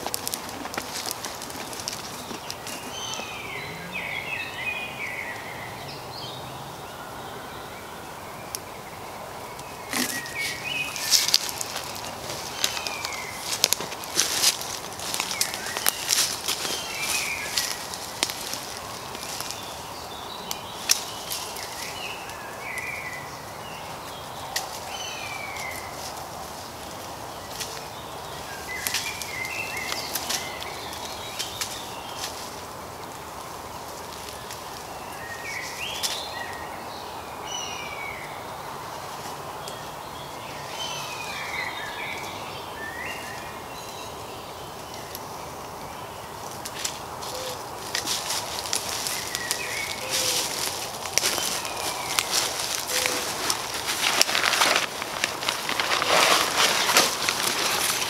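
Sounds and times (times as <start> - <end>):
twigs and leaves crackling: 0.0 - 3.6, 9.5 - 36.6, 38.8 - 58.0.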